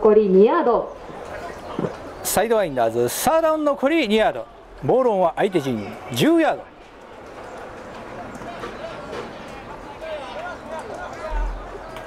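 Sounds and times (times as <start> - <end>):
open-air background noise: 0.0 - 12.0
distant shouting voices: 4.3 - 12.0.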